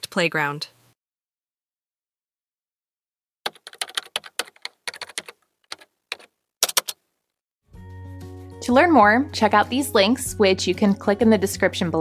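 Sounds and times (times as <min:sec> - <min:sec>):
keyboard typing: 0:03.5 - 0:07.0.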